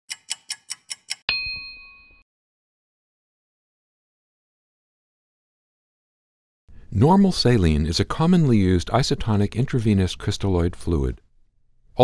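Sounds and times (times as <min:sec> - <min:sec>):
clock ticking: 0:00.1 - 0:01.3
bell ding: 0:01.3 - 0:02.2.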